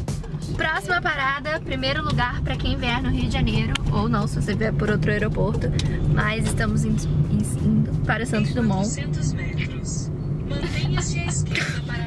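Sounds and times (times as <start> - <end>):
engine and road rumble in car: 0.0 - 12.0.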